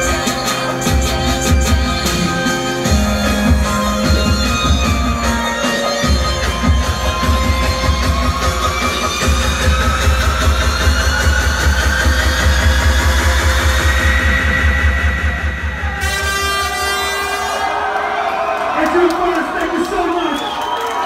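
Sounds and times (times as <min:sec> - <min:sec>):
heavy pulsing bass beat: 0:00.0 - 0:17.2.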